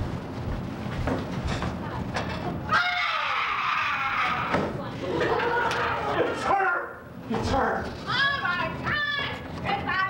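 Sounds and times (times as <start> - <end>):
person shrieking: 2.7 - 4.6.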